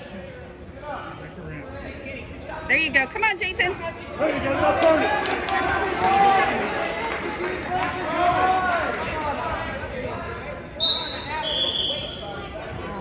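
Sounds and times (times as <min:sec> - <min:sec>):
referee's whistle blasts: 0:10.8 - 0:12.2.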